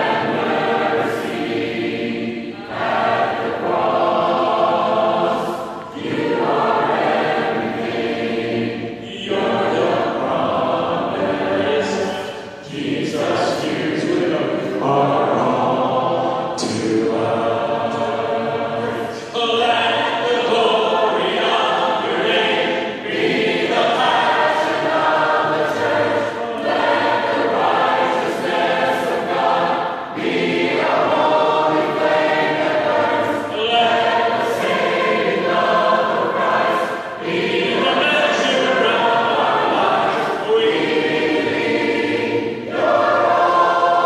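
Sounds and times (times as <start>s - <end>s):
congregation singing a hymn: 0.0s - 44.0s.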